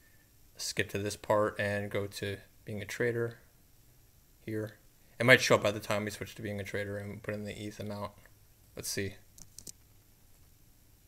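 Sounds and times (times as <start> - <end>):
mouse and keyboard clicks: 9.4 - 9.8.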